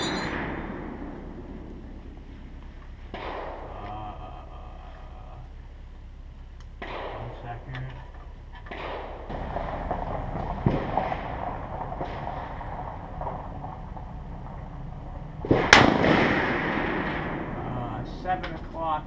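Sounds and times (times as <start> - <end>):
rifle shot with echo: 0.0 - 2.0, 3.1 - 3.9, 6.8 - 7.6, 8.7 - 17.8.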